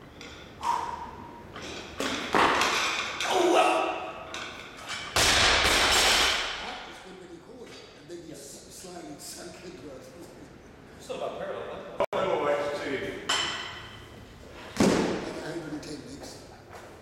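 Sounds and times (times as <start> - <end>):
person yelling and grunting: 3.2 - 4.2
barbell dropped crashing on floor: 5.2 - 6.7.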